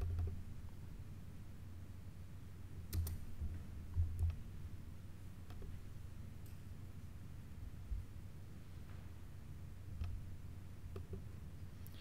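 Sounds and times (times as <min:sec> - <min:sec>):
laptop keys clicking: 0:02.9 - 0:03.3.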